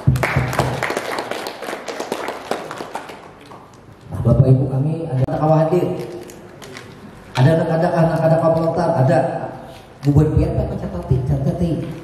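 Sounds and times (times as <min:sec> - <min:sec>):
audience clapping: 0:00.0 - 0:03.8.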